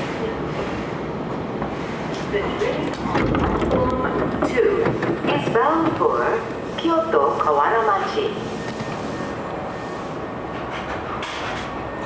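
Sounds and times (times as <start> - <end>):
train running noise: 0.0 - 12.0.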